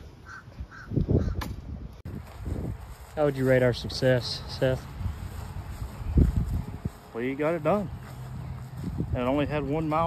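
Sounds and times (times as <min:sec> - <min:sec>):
bird calling: 0:00.2 - 0:01.4
low rumble on microphone: 0:04.8 - 0:07.1, 0:07.8 - 0:09.7.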